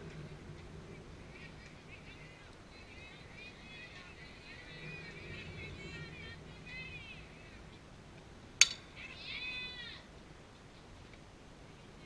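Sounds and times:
bat cracking a ball: 0:08.6 - 0:08.9.

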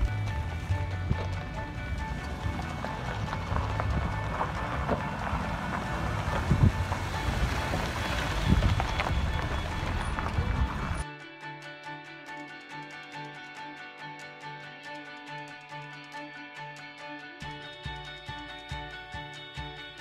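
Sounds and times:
low rumble: 0:00.0 - 0:11.0
background music: 0:00.0 - 0:20.0.

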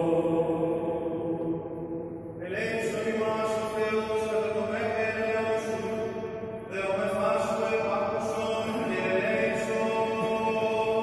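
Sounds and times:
men chanting: 0:00.0 - 0:01.3, 0:06.8 - 0:11.0.

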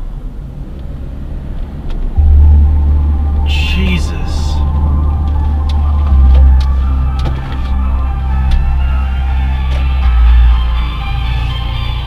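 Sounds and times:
car driving rumble: 0:00.0 - 0:12.0
music playing in car: 0:02.2 - 0:12.0.

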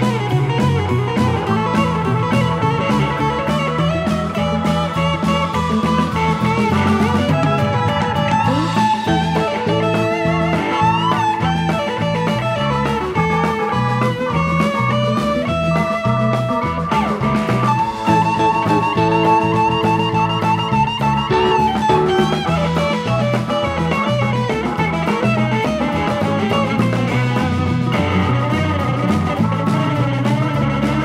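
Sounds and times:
drum kit: 0:00.0 - 0:31.0
electric guitar lead bending notes: 0:00.0 - 0:31.0
rock band playing: 0:00.0 - 0:31.0
walking bass: 0:00.0 - 0:31.0.

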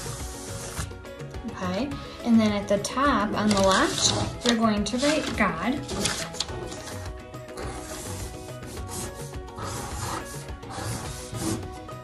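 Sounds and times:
marker rubbing on paper: 0:00.0 - 0:00.9, 0:03.5 - 0:11.7
soft background music: 0:00.0 - 0:12.0.

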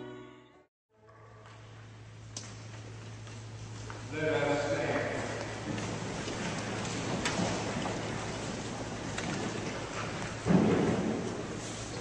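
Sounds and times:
church interior hiss: 0:01.5 - 0:12.0.

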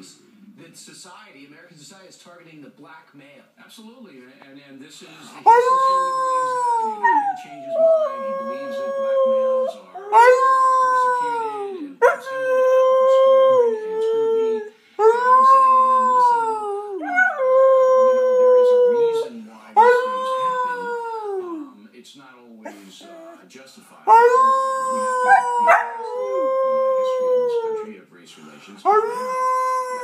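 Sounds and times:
dog howling: 0:05.4 - 0:21.7, 0:24.1 - 0:27.9, 0:28.8 - 0:30.0.

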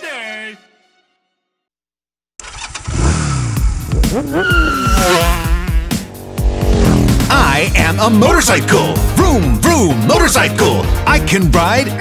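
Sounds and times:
cartoon motorcycle engine revving: 0:02.4 - 0:08.2
upbeat children's song: 0:07.3 - 0:12.0.

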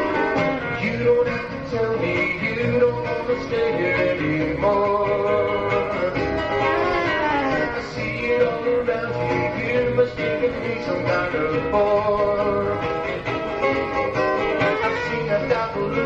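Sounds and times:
live band with electric guitar: 0:00.0 - 0:16.0.

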